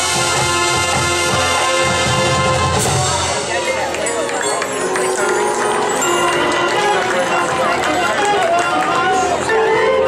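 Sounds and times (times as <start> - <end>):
marching band playing: 0.0 - 10.0
spectators talking: 0.0 - 10.0.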